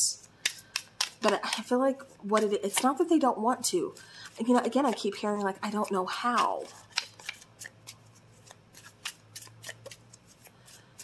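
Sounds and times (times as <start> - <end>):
cards being shuffled: 0.4 - 3.1, 4.2 - 10.8.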